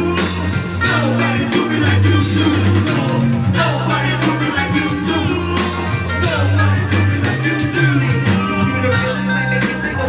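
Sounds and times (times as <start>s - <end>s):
live band playing loudly: 0.0s - 10.0s
person singing into microphone: 0.0s - 10.0s.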